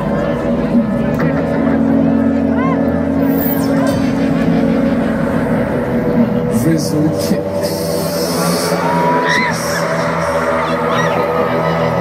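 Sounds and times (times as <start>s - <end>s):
large crowd: 0.0s - 12.0s
music over outdoor pa: 0.0s - 12.0s.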